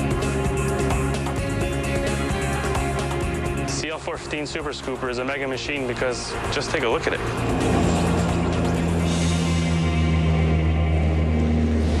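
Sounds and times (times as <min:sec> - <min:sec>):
turboprop engines droning: 0:00.0 - 0:12.0.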